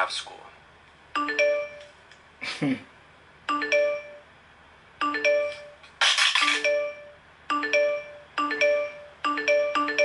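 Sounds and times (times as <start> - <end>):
phone notification chimes: 1.2 - 1.9, 3.5 - 4.2, 5.0 - 5.8, 6.4 - 10.0.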